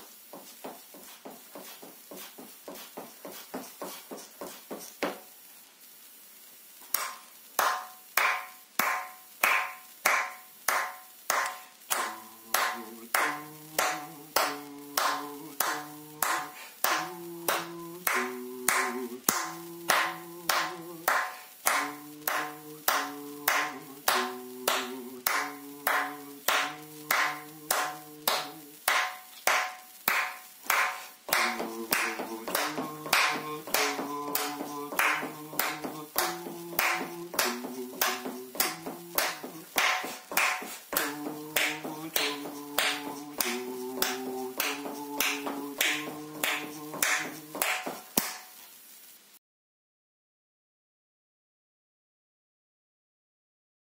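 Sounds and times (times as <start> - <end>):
hand claps steady beat: 0.0 - 5.3, 6.8 - 48.6.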